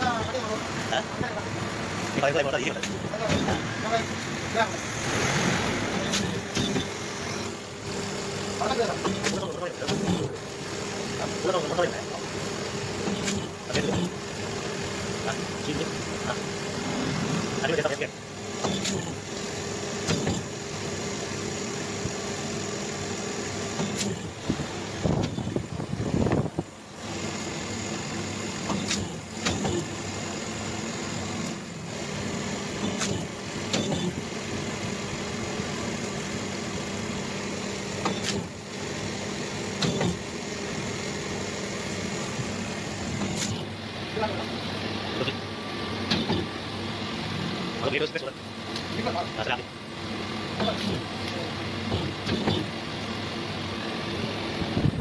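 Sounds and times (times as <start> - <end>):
machine motor and pump hum: 0.0 - 55.0.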